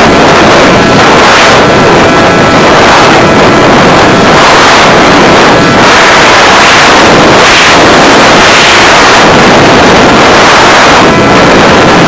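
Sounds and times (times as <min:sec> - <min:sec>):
steady motor whine: 0:00.0 - 0:12.0
wind and propeller rush: 0:00.0 - 0:12.0.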